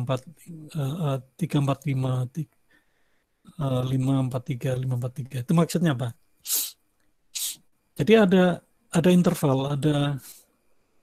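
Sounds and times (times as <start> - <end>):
man sniffing sharply: 6.4 - 6.8, 7.4 - 7.6.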